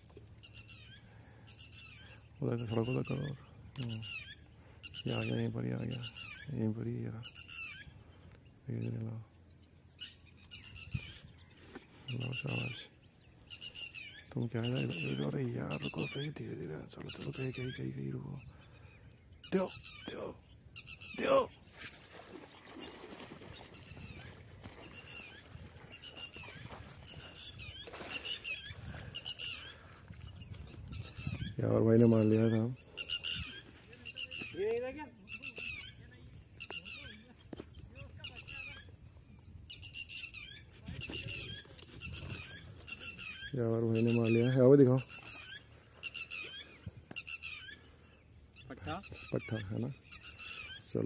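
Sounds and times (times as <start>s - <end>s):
small birds chirping: 0.0s - 51.0s
high-pitched animal chirping: 30.8s - 37.3s.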